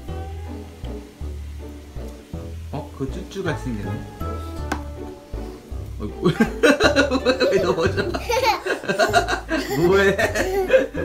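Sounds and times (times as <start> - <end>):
young children laughing: 6.2 - 11.0.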